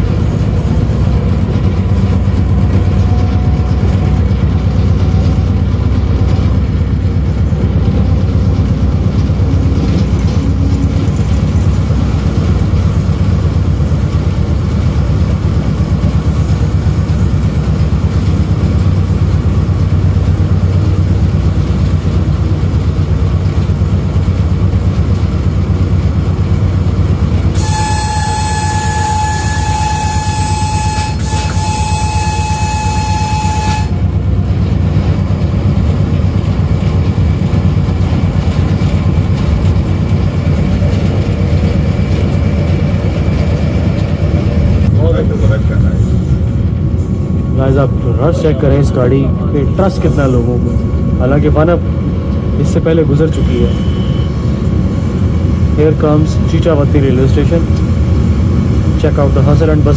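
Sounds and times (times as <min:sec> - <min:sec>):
railcar rumble: 0:00.0 - 0:59.9
train horn blast: 0:27.5 - 0:34.2.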